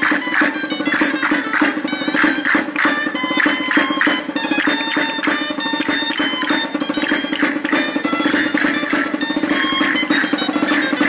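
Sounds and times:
percussion beating quick rhythm: 0:00.0 - 0:11.0
shawm playing a dance tune: 0:00.0 - 0:11.0.

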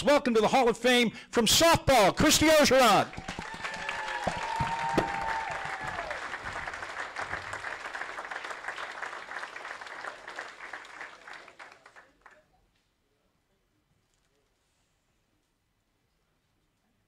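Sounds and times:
people cheering: 0:02.9 - 0:11.9
audience applauding: 0:03.0 - 0:12.4.

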